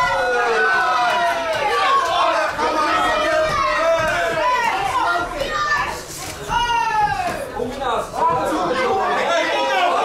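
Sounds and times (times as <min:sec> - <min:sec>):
spectators shouting: 0:00.0 - 0:07.5.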